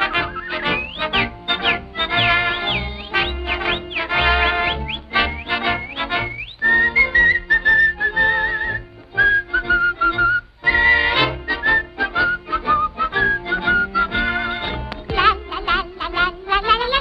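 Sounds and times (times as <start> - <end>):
light orchestral cartoon music: 0.0 - 17.0
person whistling a tune: 0.2 - 14.5.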